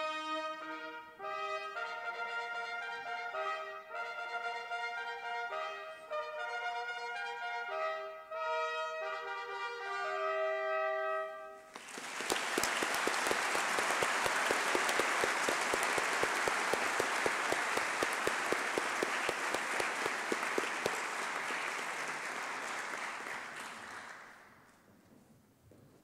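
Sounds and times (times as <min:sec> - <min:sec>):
brass fanfare chord: 0:00.0 - 0:11.7
audience applause: 0:11.7 - 0:24.7
close person clapping: 0:11.7 - 0:24.8.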